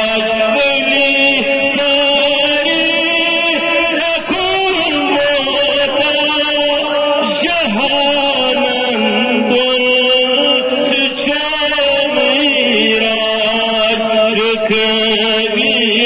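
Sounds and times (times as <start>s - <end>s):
man chanting solo: 0.0s - 16.0s.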